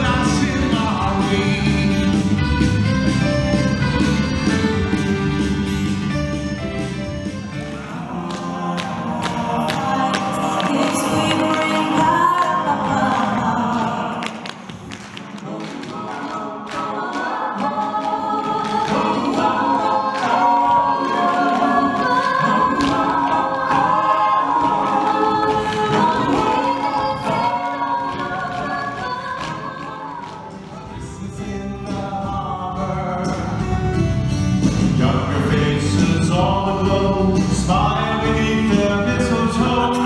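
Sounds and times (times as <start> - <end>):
choir singing in harmony: 7.6 - 33.9, 34.7 - 40.0.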